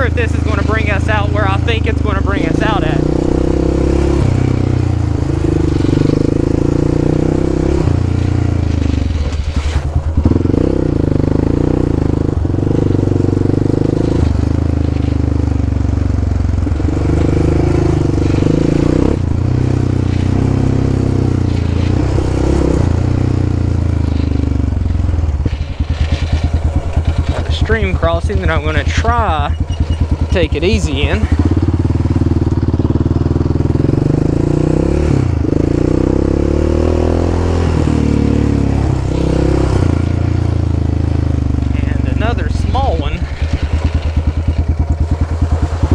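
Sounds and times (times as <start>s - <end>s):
atv engine running: 0.0s - 45.9s.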